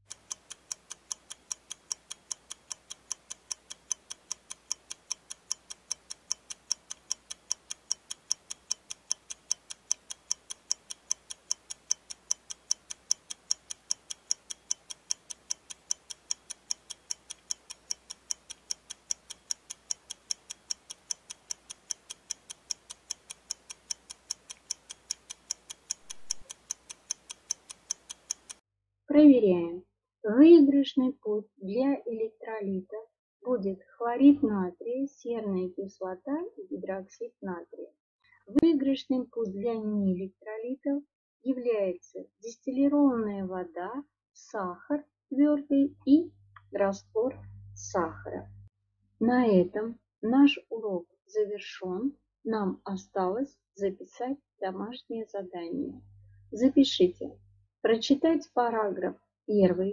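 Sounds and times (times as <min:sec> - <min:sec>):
clock ticking: 0:00.0 - 0:28.6.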